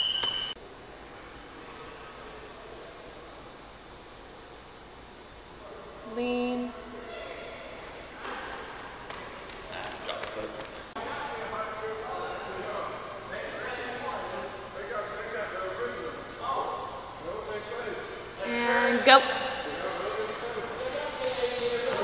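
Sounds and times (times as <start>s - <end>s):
voices echoing in a hall: 5.5s - 22.0s.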